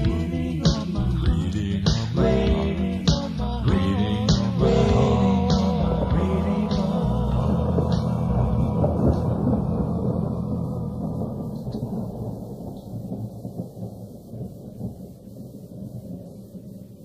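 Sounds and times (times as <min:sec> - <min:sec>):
song: 0:00.0 - 0:12.7
rain: 0:00.0 - 0:17.0
rolling thunder: 0:03.6 - 0:17.0.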